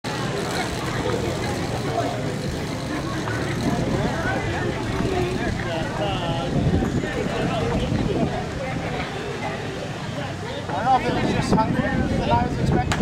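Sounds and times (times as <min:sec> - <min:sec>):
crowd voices and shouts: 0:00.0 - 0:13.0.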